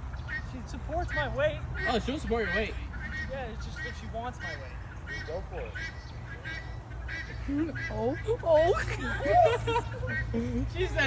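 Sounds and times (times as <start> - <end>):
farm birds calling: 0.0 - 11.0.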